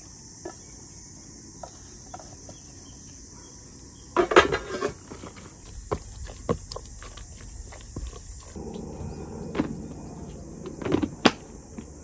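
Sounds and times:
insect chirring: 0.0 - 4.3, 5.0 - 12.0.

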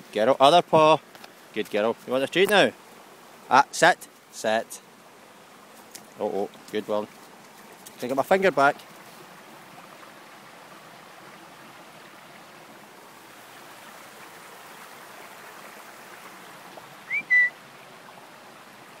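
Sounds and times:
person whistling: 17.1 - 17.6.

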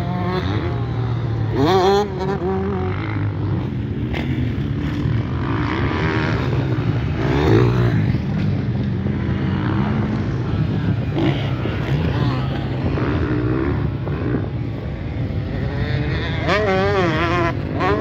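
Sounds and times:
motocross bike engines revving: 0.0 - 18.0.

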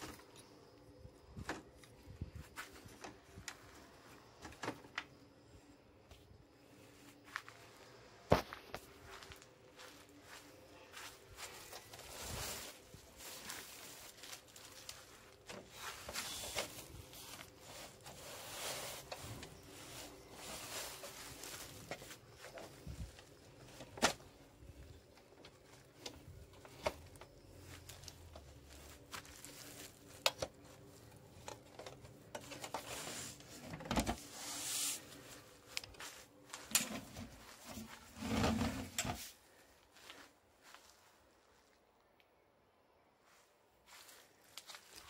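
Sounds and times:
shuffling noises: 0.0 - 4.4, 6.1 - 41.9, 43.2 - 45.0.

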